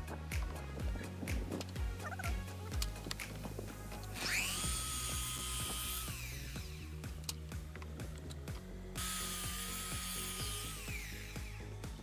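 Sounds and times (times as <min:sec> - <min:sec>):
miter saw motor whine: 0:04.2 - 0:07.0, 0:09.0 - 0:11.7.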